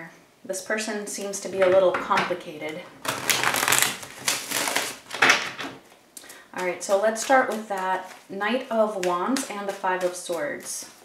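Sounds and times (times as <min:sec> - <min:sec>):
cards being shuffled: 0:03.0 - 0:05.8, 0:07.2 - 0:08.3, 0:08.9 - 0:11.0.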